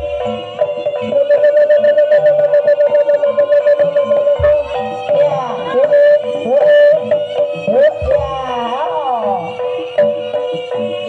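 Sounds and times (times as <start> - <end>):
wavering lead melody: 0.0 - 11.0.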